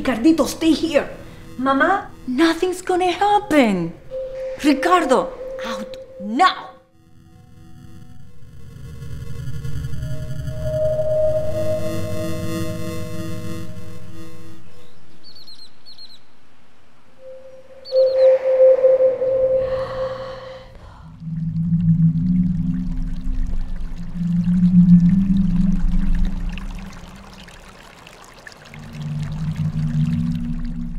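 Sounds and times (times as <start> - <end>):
deep low drones: 3.9 - 6.5, 7.3 - 15.1, 17.2 - 27.7, 28.8 - 30.9
loud sustained mid-pitched tone: 4.1 - 8.4, 9.9 - 14.8, 17.2 - 27.0
short high chirps: 4.2 - 6.7, 17.2 - 20.6
rushing noise: 17.2 - 27.2.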